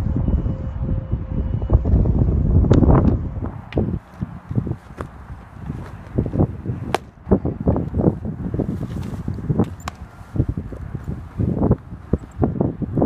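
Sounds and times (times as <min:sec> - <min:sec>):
wind buffeting microphone: 0:00.0 - 0:13.0
baseball smacking into mitt: 0:06.8 - 0:07.2, 0:09.0 - 0:10.1.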